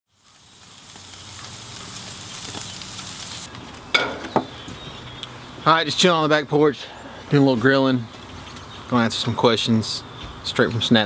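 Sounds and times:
food sizzling on a grill: 0.1s - 5.0s.

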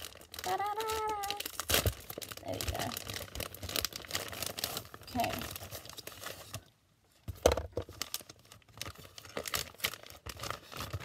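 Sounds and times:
plastic packaging crinkling: 0.0s - 6.7s, 7.4s - 11.0s.

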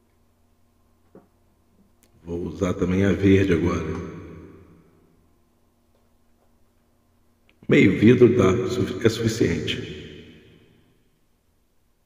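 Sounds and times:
man speaking: 2.2s - 4.2s, 7.6s - 10.0s.

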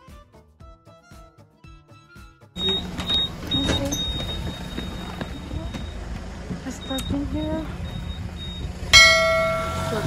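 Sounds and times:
bus engine rumbling: 2.6s - 10.0s.

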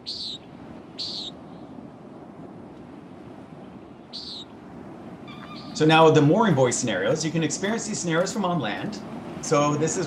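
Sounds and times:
short high bird calls: 0.0s - 1.4s, 4.0s - 4.6s, 5.2s - 5.9s
low ambient wash: 0.0s - 10.0s.

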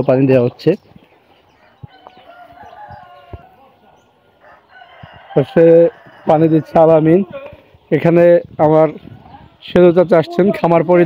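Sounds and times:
rooster crowing: 1.6s - 3.8s, 4.4s - 7.2s.

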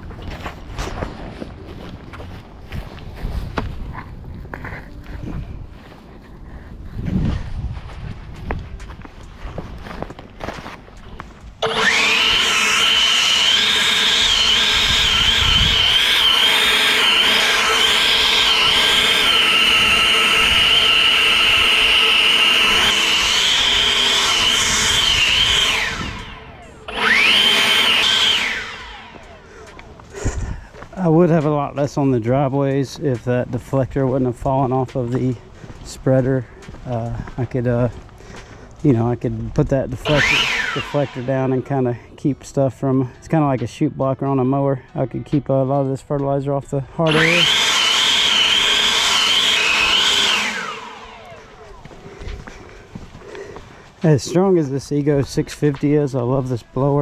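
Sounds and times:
leaf blower whining: 9.2s - 33.3s, 39.8s - 42.0s, 46.8s - 57.0s.

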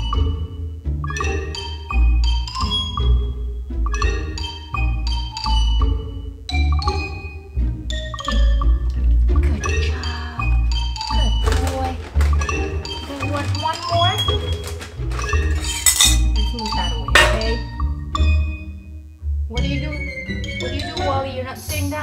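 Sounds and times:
marimba-like mallet notes: 0.0s - 7.3s, 7.9s - 14.4s, 15.3s - 18.6s.

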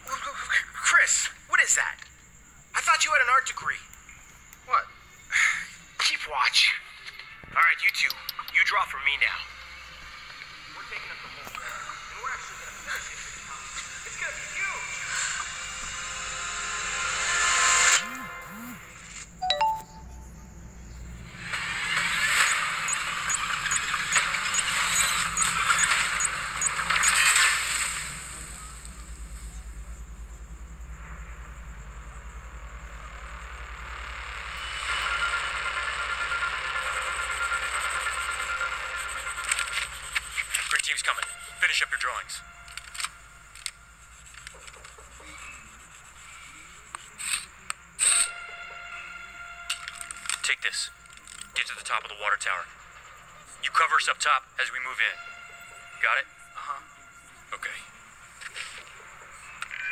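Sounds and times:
background music: 14.1s - 20.6s
steady hiss: 21.2s - 35.7s.

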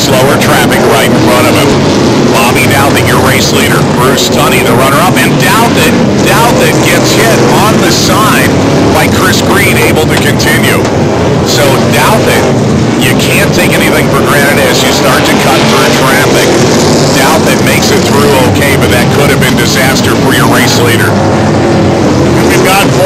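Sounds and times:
racing car engines passing by: 0.0s - 23.0s.

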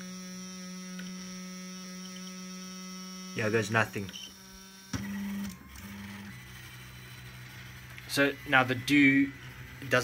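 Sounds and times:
stepper motors whining: 0.0s - 10.0s.

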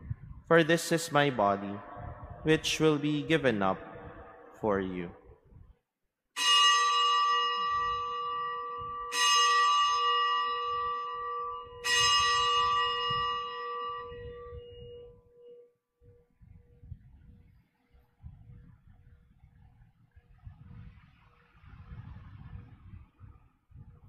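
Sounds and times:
altar bell ringing: 6.4s - 15.8s.

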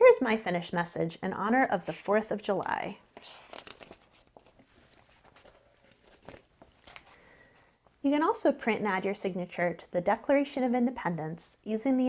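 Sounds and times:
paper pages rustling and clicking: 3.2s - 7.2s.

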